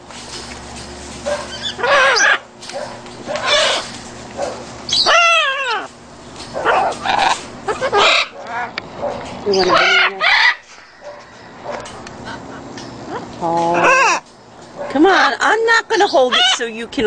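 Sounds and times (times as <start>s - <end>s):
macaws squawking: 1.3s - 14.9s, 15.9s - 16.8s.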